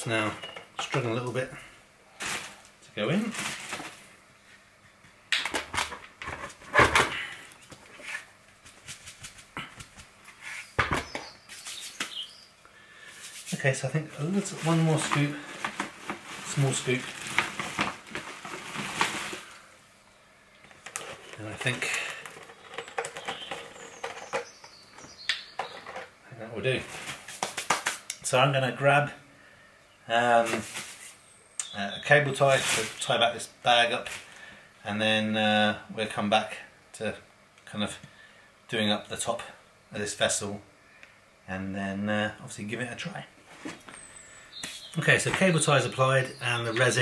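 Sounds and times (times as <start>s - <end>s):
plastic bottle crinkling: 2.2s - 4.1s, 14.2s - 19.7s, 20.6s - 26.1s
gritty resin rustles: 13.1s - 19.7s.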